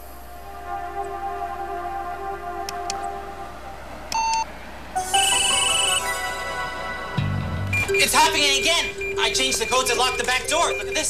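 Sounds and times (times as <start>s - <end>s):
background music: 0.0s - 11.0s
computer beep: 4.2s - 11.0s
high electronic tone: 4.2s - 11.0s.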